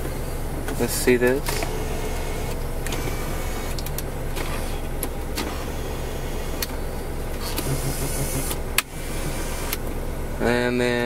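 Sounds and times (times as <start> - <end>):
electric seat motor running: 0.0 - 10.0.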